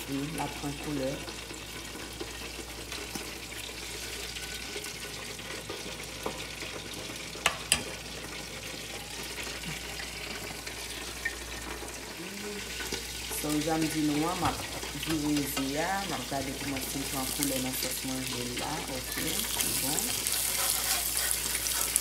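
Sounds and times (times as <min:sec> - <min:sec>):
eggs sizzling in a skillet: 0:00.0 - 0:22.0.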